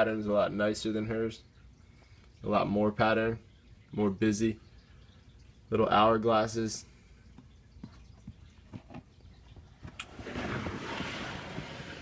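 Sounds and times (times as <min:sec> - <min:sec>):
plastic tub scraping along shelf: 0:10.0 - 0:12.0.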